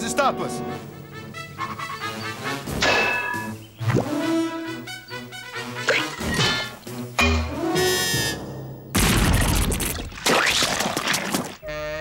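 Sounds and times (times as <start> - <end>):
cartoon music score: 0.0 - 8.7
paint crash and splash: 9.0 - 11.6.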